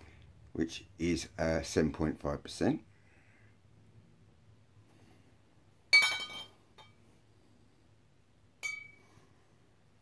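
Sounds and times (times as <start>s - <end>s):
glass bottles clinking: 5.9s - 7.0s, 8.6s - 9.0s.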